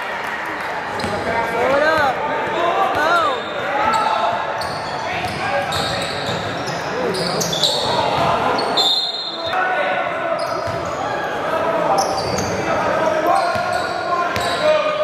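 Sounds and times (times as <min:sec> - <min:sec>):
players and spectators voices: 0:00.0 - 0:15.0
referee's whistle: 0:08.6 - 0:09.6.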